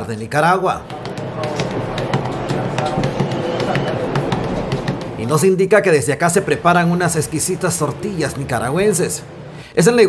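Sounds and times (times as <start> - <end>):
hands patting dough: 0.8 - 5.6.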